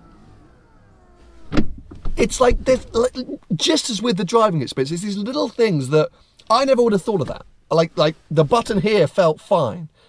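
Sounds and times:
electric motor whine: 0.0s - 1.7s
car door thud: 1.3s - 3.0s.

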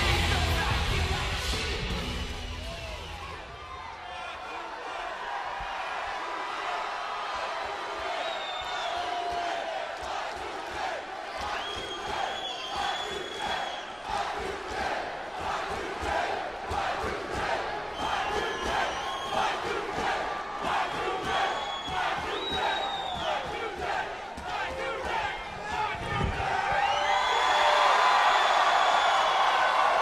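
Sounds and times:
arena crowd cheering and shouting: 0.0s - 30.0s.

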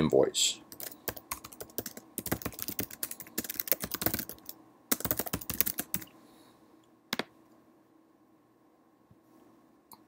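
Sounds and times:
fast typing on keyboard: 0.7s - 6.1s.

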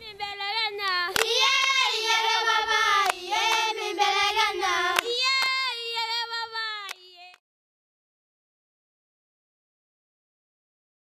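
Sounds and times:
women singing unaccompanied: 0.0s - 7.4s
sharp hand claps: 1.1s - 1.8s, 2.9s - 3.8s, 4.9s - 5.7s.

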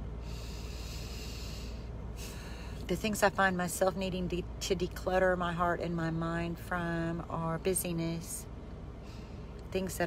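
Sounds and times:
car cabin hum: 0.0s - 8.9s.

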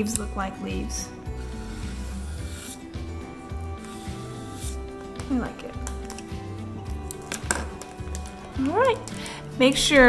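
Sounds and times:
background music with bass line: 0.0s - 10.0s
marker scratching on paper: 1.4s - 3.0s, 3.8s - 4.8s.

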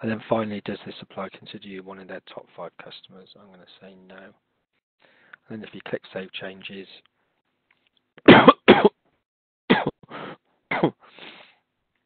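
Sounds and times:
man coughing: 8.3s - 9.0s, 9.7s - 11.1s.

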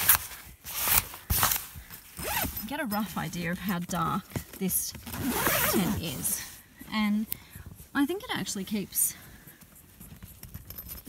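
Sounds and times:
tent zipper being pulled: 0.0s - 2.7s, 5.0s - 6.6s
fabric rustling: 0.0s - 3.2s, 4.0s - 6.7s.

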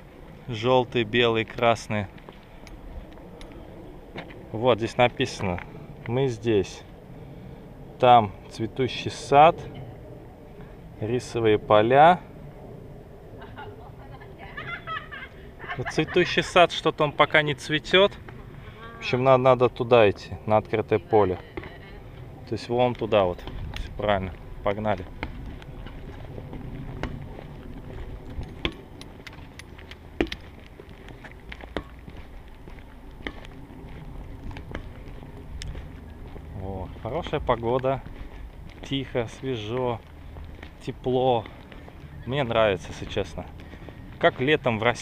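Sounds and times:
low outdoor rumble: 0.0s - 45.0s.

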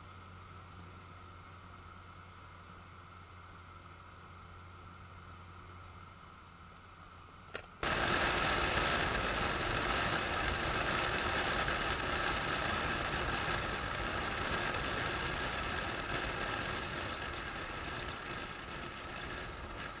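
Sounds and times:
car engine running: 0.0s - 20.0s
wind and tyre noise: 0.0s - 20.0s.

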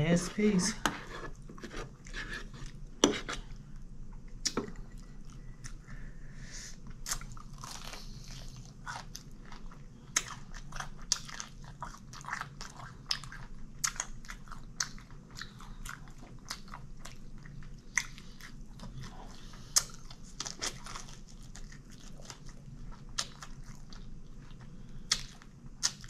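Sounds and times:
chewing crispy fried chicken: 6.9s - 26.0s.

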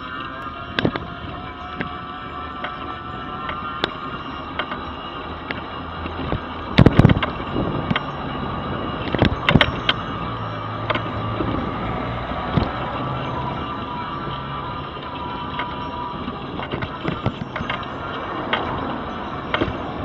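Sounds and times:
road noise: 0.0s - 20.0s
scooter motor hum: 0.0s - 20.0s
knocks and rattles over bumps: 2.6s - 20.0s.

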